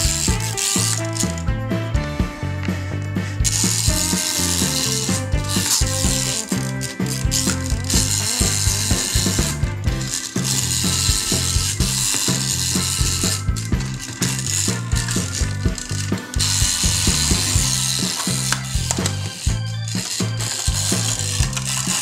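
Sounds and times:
toy wheels ratcheting: 0.0s - 1.5s, 3.4s - 22.0s
background music: 0.0s - 22.0s.

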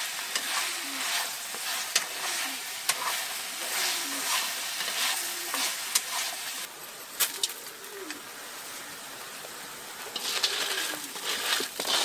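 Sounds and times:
fish sizzling in a frying pan: 0.0s - 6.7s.

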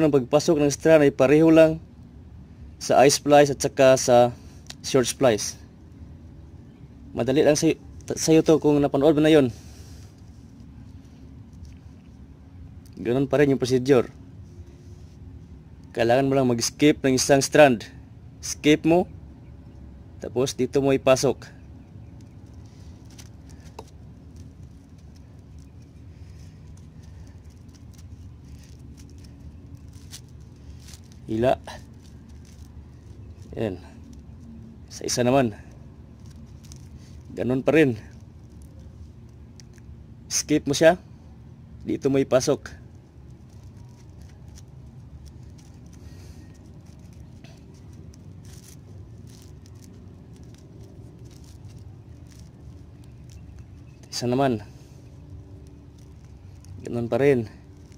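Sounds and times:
steady low hum: 0.0s - 57.9s
steady low rumble: 0.0s - 57.9s
rope rustling and scratching: 7.5s - 16.8s, 21.6s - 57.9s.

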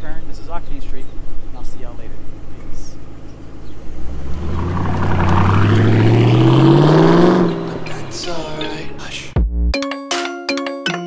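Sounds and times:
car engine accelerating: 0.2s - 9.3s.

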